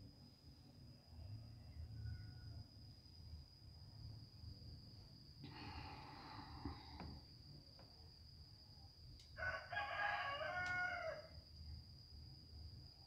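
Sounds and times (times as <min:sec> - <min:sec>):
rooster crowing: 0:01.7 - 0:02.6, 0:09.4 - 0:11.4.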